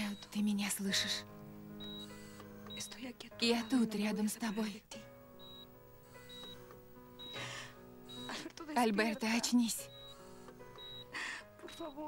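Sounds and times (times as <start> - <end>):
soft background music: 0.0 - 12.0
high electronic beeps: 1.8 - 4.8, 5.4 - 7.4, 8.1 - 8.4, 9.8 - 11.2.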